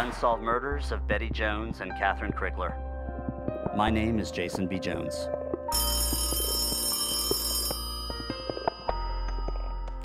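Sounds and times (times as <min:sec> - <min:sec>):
old telephone bell ringing: 0:05.7 - 0:09.8.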